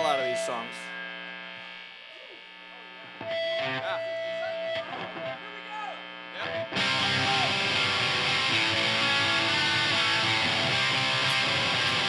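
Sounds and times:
amp hum: 0.0s - 12.0s
electric guitars through amplifiers: 0.0s - 12.0s
people shouting: 6.8s - 8.1s.

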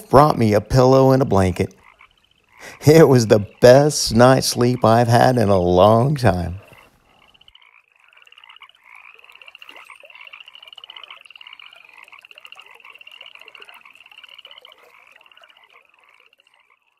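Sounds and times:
frogs croaking: 0.0s - 16.9s
frogs trilling: 0.0s - 16.9s.

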